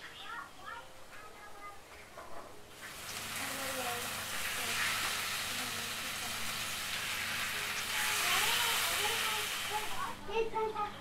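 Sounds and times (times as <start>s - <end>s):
chicken sizzling in hot oil: 2.7s - 10.2s.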